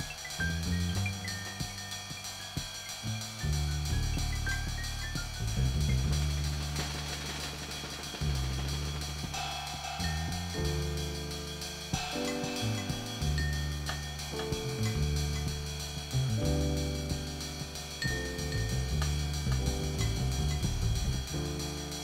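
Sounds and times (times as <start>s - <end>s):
bass line: 0.0s - 22.0s
drum kit hi-hat and cymbal beat: 0.0s - 22.0s
held chords: 0.0s - 22.0s.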